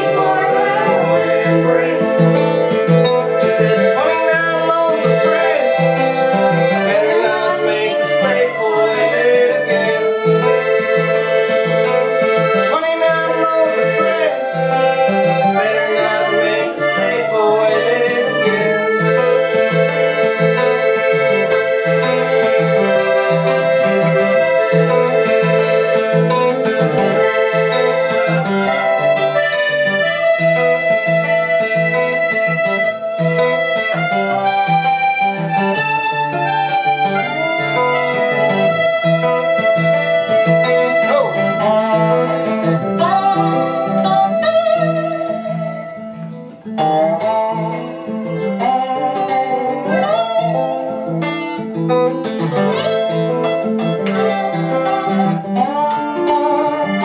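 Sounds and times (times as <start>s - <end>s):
accordion chords: 0.0s - 57.0s
slide guitar sliding notes: 0.0s - 57.0s
strummed acoustic guitar: 0.0s - 57.0s.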